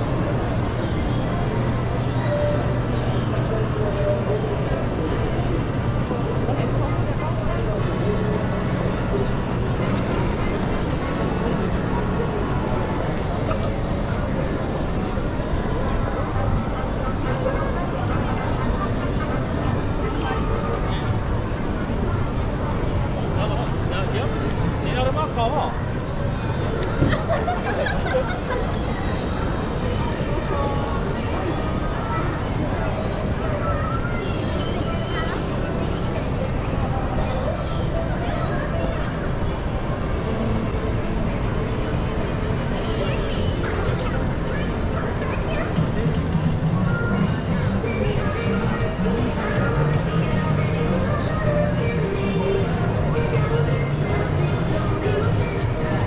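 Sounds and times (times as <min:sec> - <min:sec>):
chatter of passers-by: 0:00.0 - 0:56.0
traffic rumble: 0:00.0 - 0:56.0.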